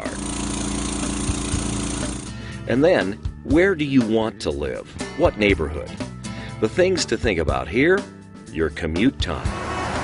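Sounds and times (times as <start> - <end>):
lawn mower engine running: 0.0 - 2.5.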